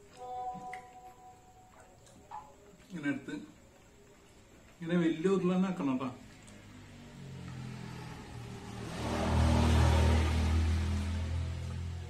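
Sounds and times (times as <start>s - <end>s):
vehicle engine passing by: 6.3s - 12.0s.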